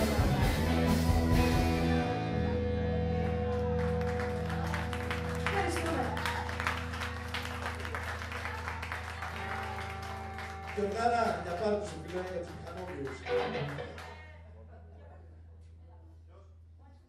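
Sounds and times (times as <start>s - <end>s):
rock band chord ringing: 0.0s - 5.7s
audience clapping: 3.1s - 14.3s.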